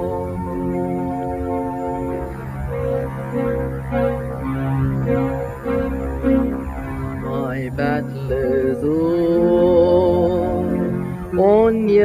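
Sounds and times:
man singing slow song: 7.3 - 12.0.

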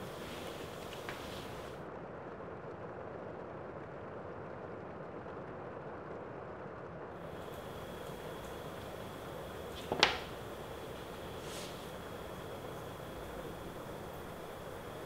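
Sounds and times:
microphone hiss: 0.0 - 1.8, 7.2 - 15.0
faint tap: 0.1 - 1.7, 7.4 - 14.5.

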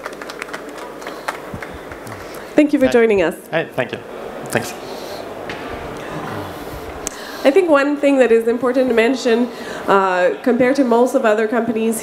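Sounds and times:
sparse applause: 0.0 - 2.6, 3.9 - 7.7
exhibition hall hum: 0.0 - 12.0.

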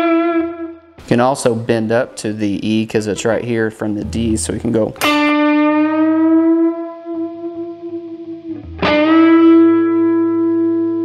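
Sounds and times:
electric guitar note bent: 5.0 - 11.0.

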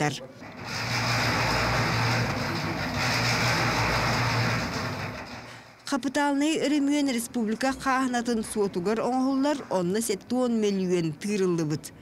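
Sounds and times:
concrete mixer drum whirring: 0.3 - 5.8
low motor hum: 0.4 - 5.7.

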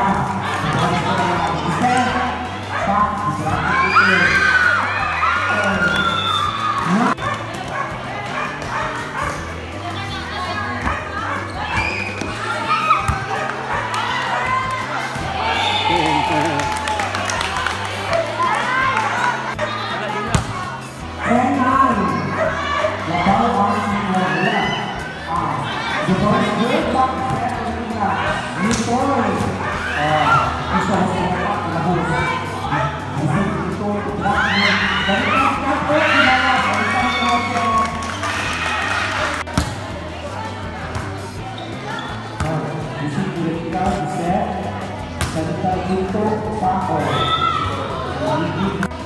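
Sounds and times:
crowd and players shouting and cheering: 0.0 - 49.0
volleyball being struck: 39.5 - 39.8.

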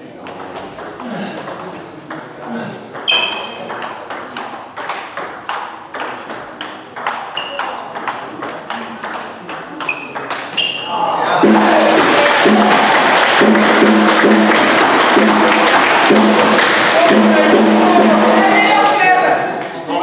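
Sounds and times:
table tennis rally: 0.0 - 20.0.

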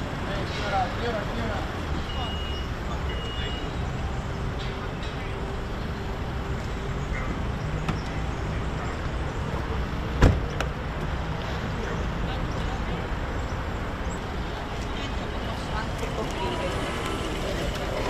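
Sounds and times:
road traffic rumble: 0.0 - 18.0
car door latch clunk: 10.2 - 10.7.

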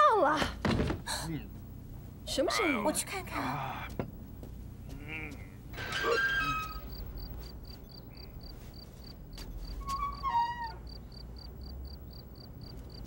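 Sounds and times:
crickets chirping: 0.9 - 13.0.

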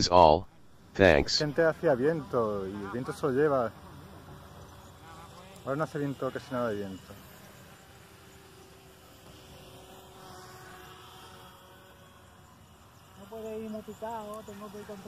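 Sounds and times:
model aircraft motor buzzing: 0.7 - 15.0.

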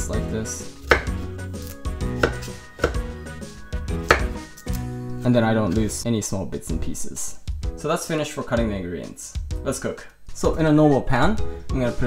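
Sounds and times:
background music: 0.0 - 12.0
knife chopping on wooden board: 0.8 - 3.1, 4.0 - 4.4.

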